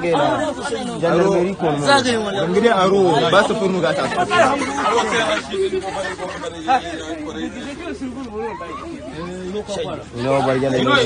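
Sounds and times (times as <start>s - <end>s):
people talking over each other: 0.0s - 11.0s.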